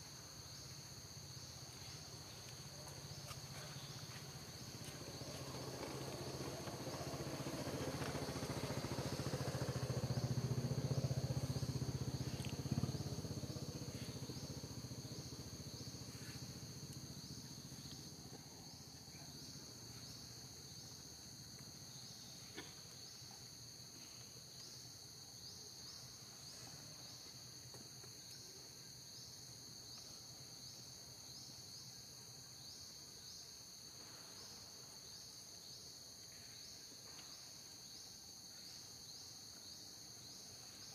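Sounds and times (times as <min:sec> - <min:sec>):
insects chirping: 0:00.0 - 0:40.9.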